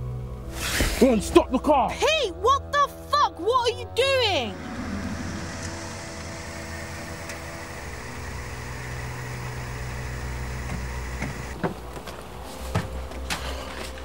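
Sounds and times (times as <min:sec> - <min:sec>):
car engine hum: 0:04.4 - 0:13.3
road noise: 0:04.4 - 0:14.0.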